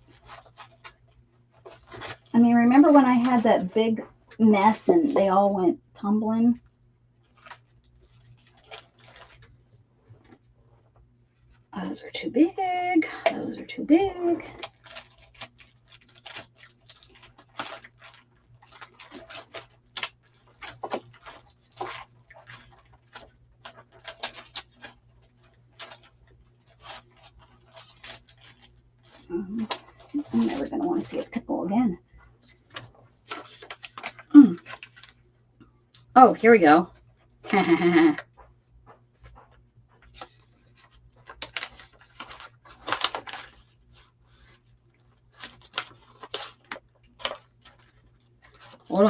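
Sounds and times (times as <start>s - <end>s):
paper rustling: 0.0s - 5.5s, 7.2s - 11.7s, 13.1s - 35.3s, 36.7s - 49.0s.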